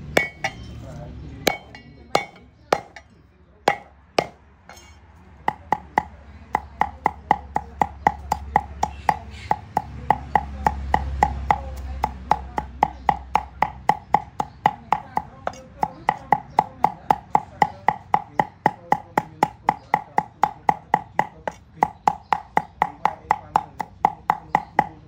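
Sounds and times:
cleaver chopping on wooden board: 1.5 - 3.0, 3.7 - 4.8, 5.5 - 25.0.

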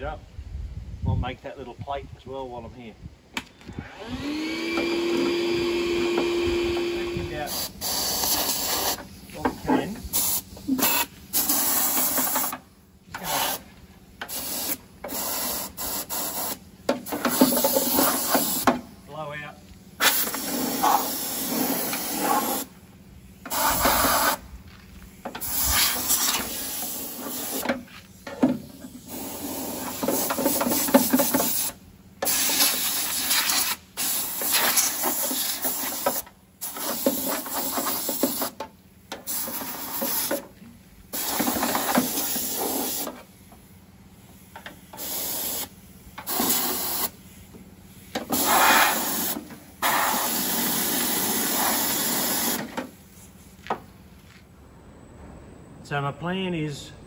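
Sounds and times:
compressed air gun hissing: 7.4 - 9.4, 10.0 - 19.0, 20.0 - 53.6.

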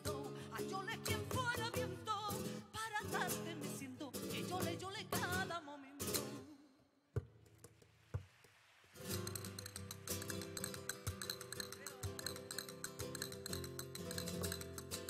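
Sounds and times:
flamenco guitar playing: 0.0 - 6.5, 9.0 - 15.0
person singing: 0.0 - 6.6
sharp taps: 9.3 - 15.0.

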